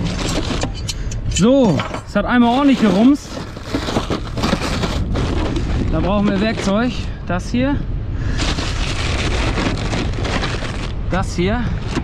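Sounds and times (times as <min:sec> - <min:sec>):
metal parts rattling: 0:00.0 - 0:06.8
steady low rumble: 0:00.0 - 0:12.0
plastic bags rustling: 0:02.2 - 0:07.1, 0:08.3 - 0:12.0.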